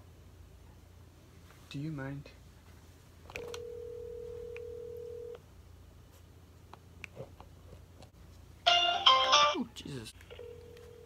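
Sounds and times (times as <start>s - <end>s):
telephone ringback tone: 3.6s - 5.4s, 10.3s - 11.0s.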